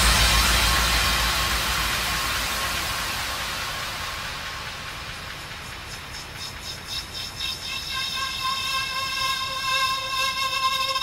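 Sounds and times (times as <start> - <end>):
white noise hiss: 0.0 - 11.0.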